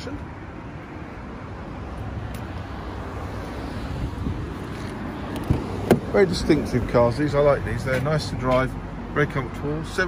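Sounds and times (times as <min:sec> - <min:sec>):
wind rumbling on microphone: 0:03.5 - 0:06.4.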